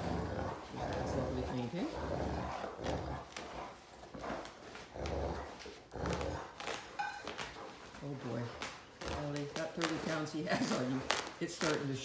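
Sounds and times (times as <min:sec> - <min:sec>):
dogs growling in play: 0:00.0 - 0:09.2.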